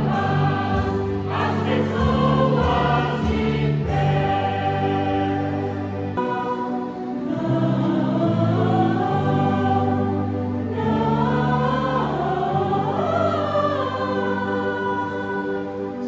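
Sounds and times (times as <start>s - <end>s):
mixed choir singing in harmony: 0.0s - 16.0s.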